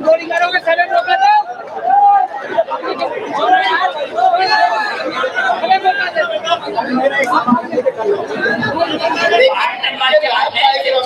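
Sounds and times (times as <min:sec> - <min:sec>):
loud jumble of chatter: 0:00.0 - 0:11.0.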